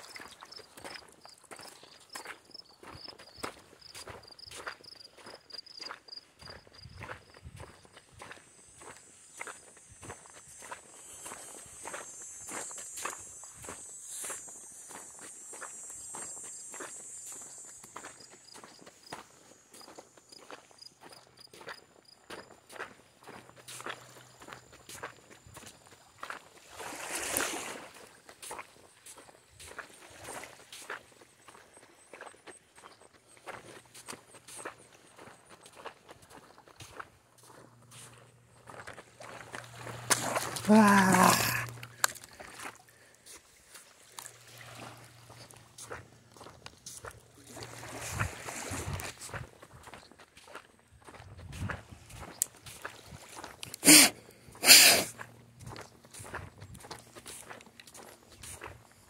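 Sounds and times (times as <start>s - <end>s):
footsteps on sand and pebbles: 0.0s - 59.0s.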